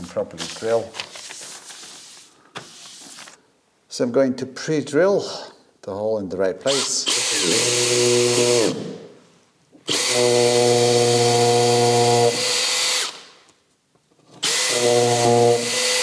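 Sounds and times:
cordless drill drilling into wall: 6.7 - 9.0, 9.9 - 13.3, 14.3 - 16.0.

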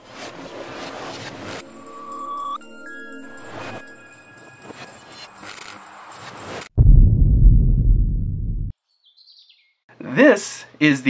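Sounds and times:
deep low boom: 6.8 - 8.7.

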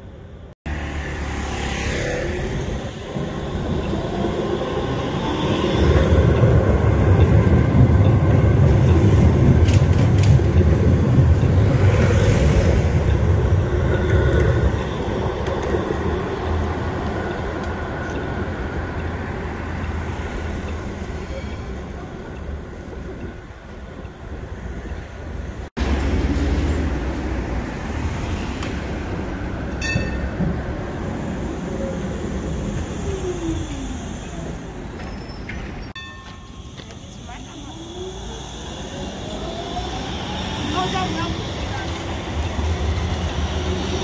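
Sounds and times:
road traffic: 0.0 - 44.0
tram rumbling past: 0.0 - 44.0.

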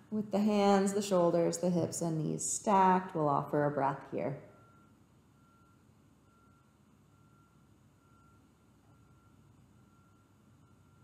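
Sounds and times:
faint electronic beeps: 4.5 - 11.0.

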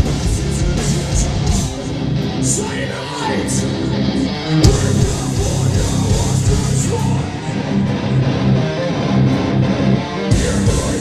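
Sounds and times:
electric guitars and bass riff: 0.0 - 11.0.

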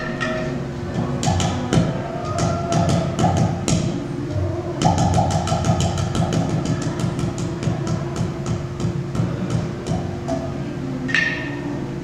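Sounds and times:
clay pot drum bass notes: 0.0 - 11.7.

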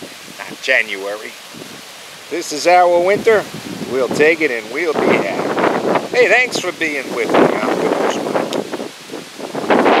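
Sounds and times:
gusty wind buffeting microphone: 0.0 - 10.0.

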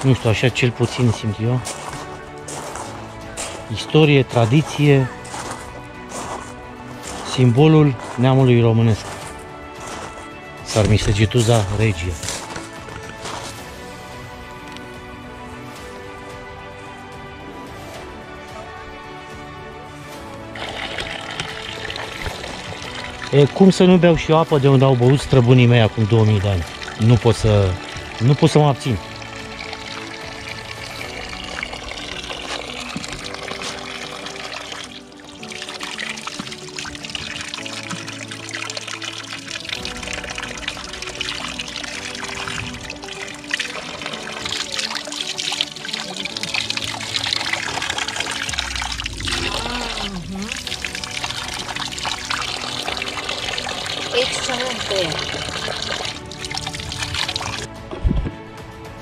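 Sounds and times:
water trickling: 0.0 - 14.9, 20.2 - 57.7
background music: 0.0 - 59.0.

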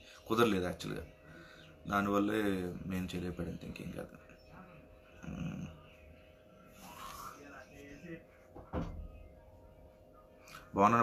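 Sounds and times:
faint steady hum: 0.0 - 11.0
short thump: 8.6 - 9.1.

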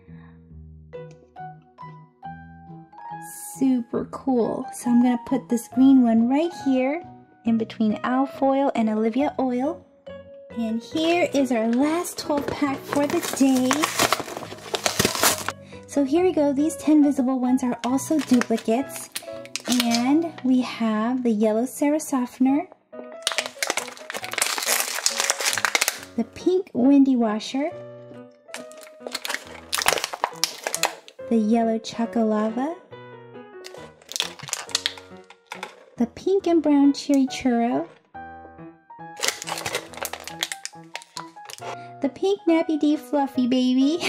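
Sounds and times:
soft background music: 0.0 - 44.0
plastic packaging crinkling: 11.0 - 15.6, 17.8 - 20.4, 23.2 - 26.2, 28.5 - 31.2, 33.6 - 35.8, 39.2 - 41.8.

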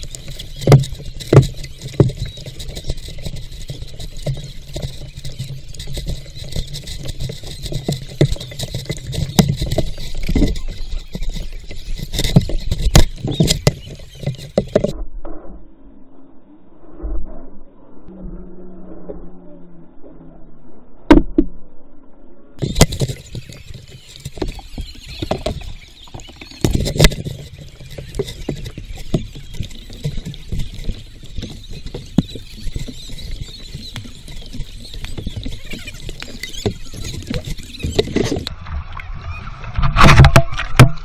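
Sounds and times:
water splashing and crackling: 0.0 - 15.0, 22.6 - 41.0
muffled thumps: 22.6 - 38.5.

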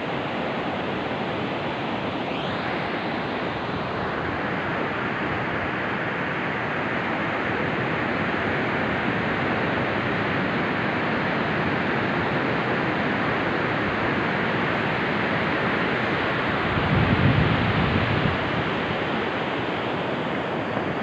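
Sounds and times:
wind: 0.0 - 21.0.

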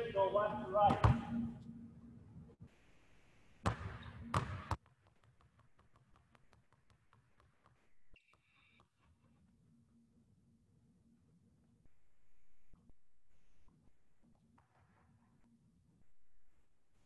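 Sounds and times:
basketball dribbling on court: 0.9 - 1.3, 3.6 - 8.1.

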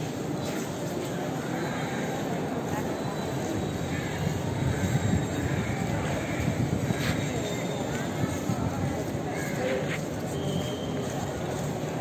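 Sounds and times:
faint voices: 0.0 - 12.0
low crowd rumble: 0.0 - 12.0.

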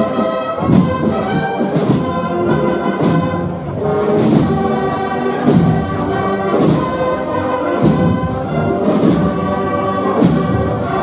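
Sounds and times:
percussion stroke: 0.0 - 11.0
wind band playing march: 0.0 - 11.0.

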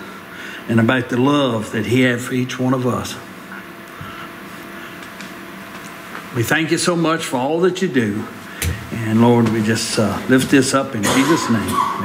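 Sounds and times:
quiet room hum: 0.0 - 12.0.

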